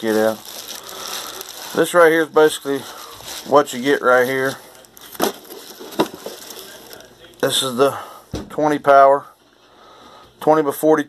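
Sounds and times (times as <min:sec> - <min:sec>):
bubble wrap and cardboard crackling: 0:00.0 - 0:07.8.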